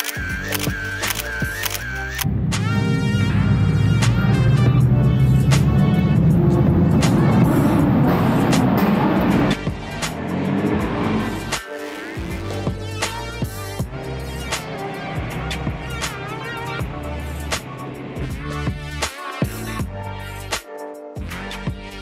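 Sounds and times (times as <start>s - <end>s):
background music: 0.0s - 22.0s
car engine revving: 2.2s - 19.0s.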